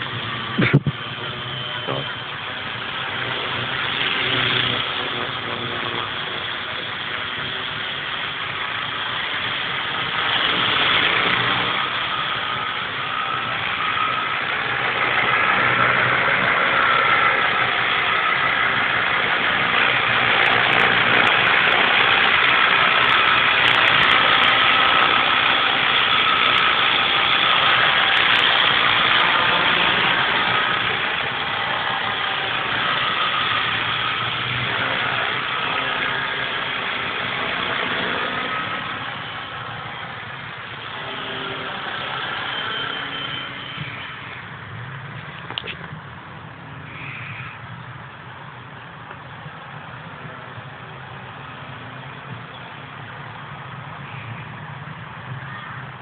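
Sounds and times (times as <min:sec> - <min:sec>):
toy helicopter motor whine: 0:00.0 - 0:45.8.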